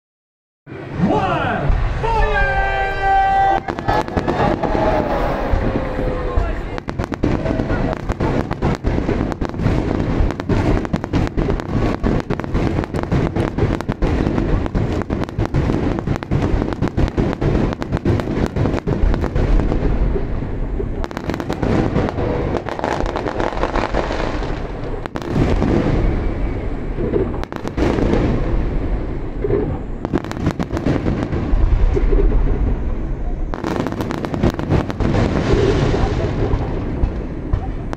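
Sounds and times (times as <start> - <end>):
fireworks bangs and crackles: 0.7 - 37.9
low rumble: 3.6 - 30.1, 31.2 - 37.9.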